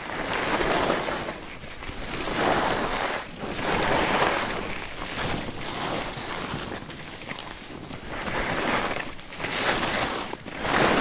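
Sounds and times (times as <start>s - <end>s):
skis scraping over snow: 0.0s - 11.0s.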